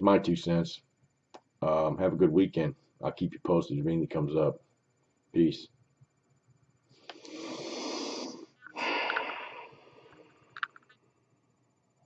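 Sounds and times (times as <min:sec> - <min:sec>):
man exhaling heavily: 0:07.3 - 0:09.8.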